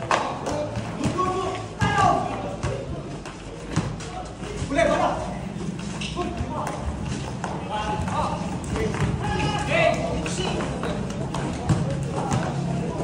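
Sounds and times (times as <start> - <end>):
ball kicked and bounced: 0.0 - 5.1, 5.7 - 13.0
running footsteps on concrete: 1.6 - 12.8.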